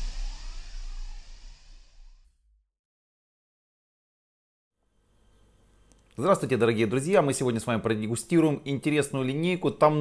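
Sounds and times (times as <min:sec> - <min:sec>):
hissing swoosh: 0:00.0 - 0:02.4.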